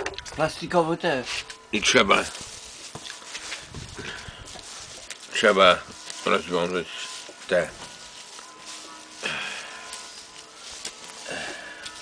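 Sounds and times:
plastic bag crinkling: 1.4 - 12.0.

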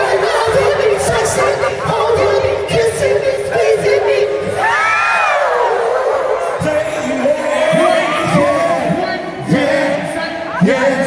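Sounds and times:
male vocal group singing in harmony: 0.0 - 11.0.

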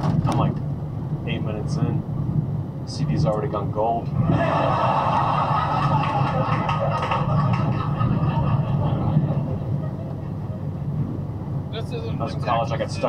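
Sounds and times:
road and engine drone: 0.0 - 13.0
audience laughter: 4.2 - 10.9.

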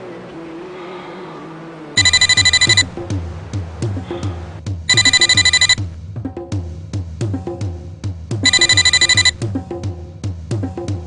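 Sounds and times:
telephone ringer trilling: 2.0 - 2.9, 4.9 - 5.8, 8.5 - 9.4
background music: 2.0 - 11.0
low repeating drum beat: 2.8 - 11.0.

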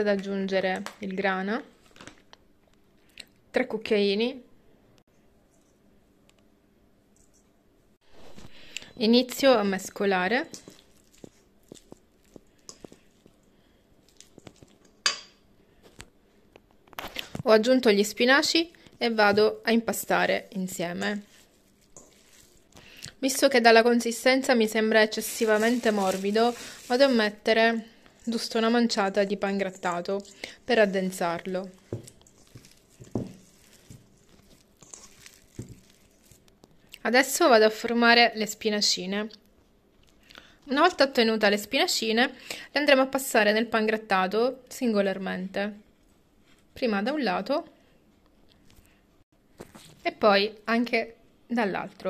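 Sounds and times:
hand kneading soft mixture: 9.3 - 15.1, 17.5 - 37.6.

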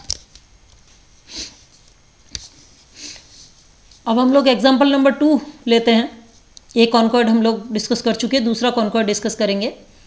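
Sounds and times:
person inhaling: 1.2 - 1.7, 2.9 - 3.4.

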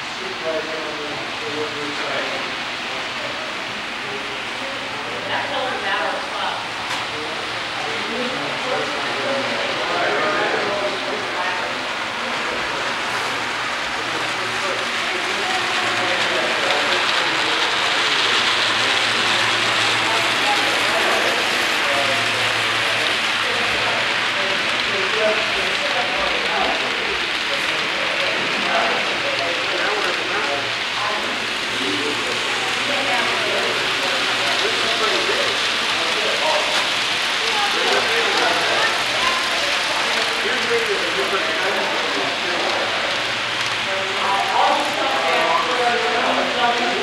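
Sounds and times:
faint voices: 0.0 - 47.0.

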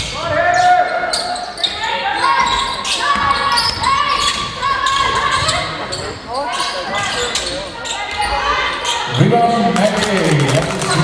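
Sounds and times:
sneakers squeaking: 0.0 - 10.2.

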